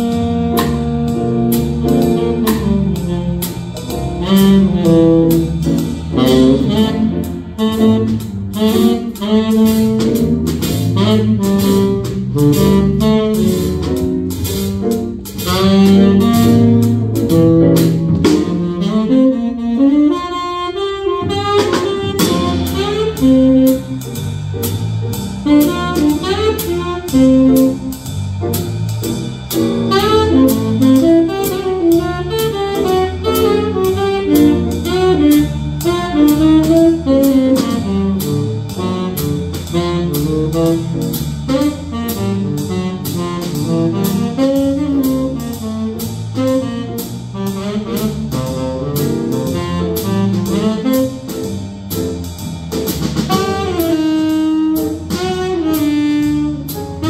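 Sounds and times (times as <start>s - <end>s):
steady cymbal beat: 0.0s - 19.9s, 21.2s - 57.0s
saxophone melody: 0.0s - 28.6s, 29.7s - 52.2s, 53.3s - 57.0s
electric bass: 0.0s - 57.0s
swinging drum kit: 0.0s - 57.0s.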